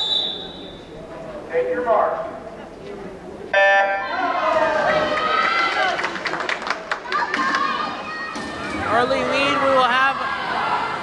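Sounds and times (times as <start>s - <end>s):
short loud buzzing beep: 3.6s - 4.1s
spectators shouting and cheering: 3.6s - 6.3s, 6.9s - 11.0s.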